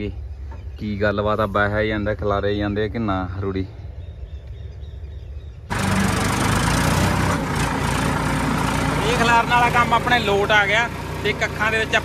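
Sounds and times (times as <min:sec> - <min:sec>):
tractor engine running: 0:05.7 - 0:12.0.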